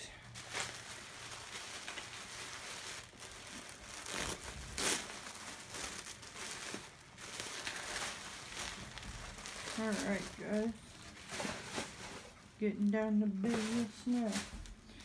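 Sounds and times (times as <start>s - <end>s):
tissue paper crinkling: 0.2s - 15.0s.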